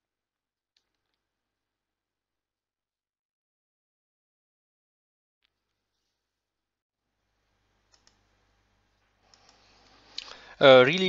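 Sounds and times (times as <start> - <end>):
computer mouse clicks: 7.9 - 8.2, 9.3 - 10.4.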